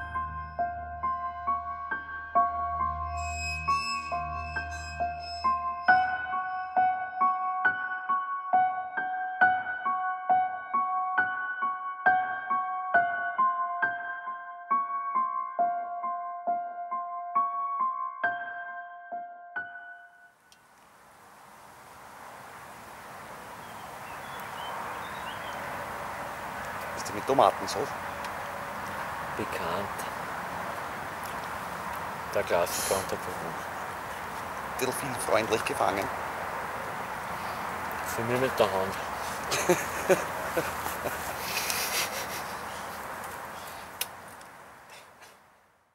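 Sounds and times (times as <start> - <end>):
piano note: 0.0 - 20.3
outdoor background hiss: 20.4 - 45.9
faint bird chirps: 23.6 - 25.6.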